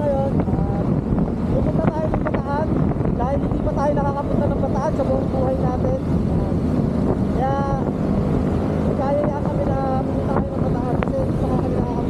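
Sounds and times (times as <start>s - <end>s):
road noise: 0.0s - 12.0s
wind buffeting microphone: 0.0s - 12.0s
person speaking: 1.5s - 6.7s, 8.9s - 12.0s.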